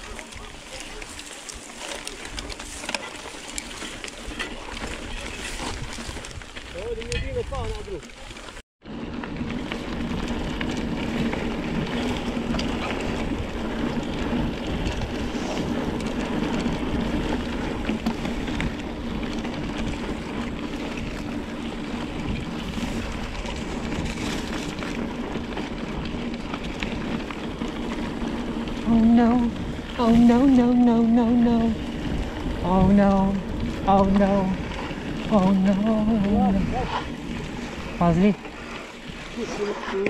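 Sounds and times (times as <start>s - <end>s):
bike tyres rumbling and rattling: 0.0s - 40.0s
wind noise on microphone: 2.2s - 8.1s, 8.9s - 39.4s.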